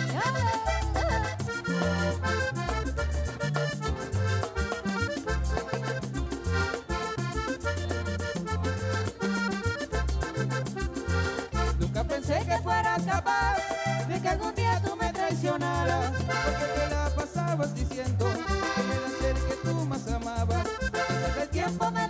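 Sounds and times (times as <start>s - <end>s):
bass notes: 0.0s - 22.0s
button accordion playing: 0.0s - 22.0s
steady percussion: 0.0s - 22.0s.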